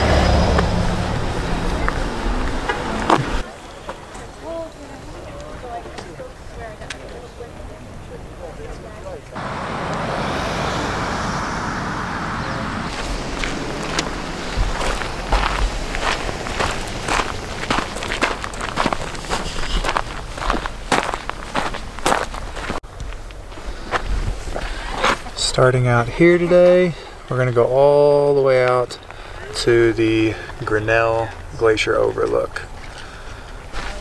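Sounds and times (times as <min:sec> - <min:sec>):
footsteps on gravel: 0:12.9 - 0:25.4, 0:32.8 - 0:34.0.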